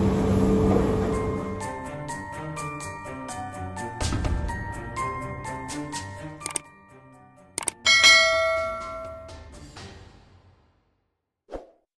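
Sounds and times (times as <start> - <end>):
sharp double clicks: 6.4 - 6.6, 7.6 - 7.8
bright chime ringing: 7.8 - 9.5
mallet-like jingle notes: 7.8 - 9.6.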